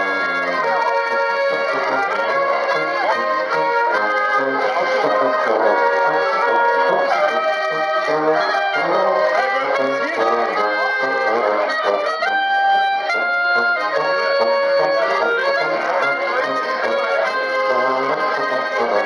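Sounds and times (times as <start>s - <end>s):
accordion: 0.0s - 19.0s
clarinet: 0.0s - 19.0s
strummed guitar: 0.0s - 19.0s
trumpet: 0.0s - 19.0s
tuba: 0.0s - 19.0s.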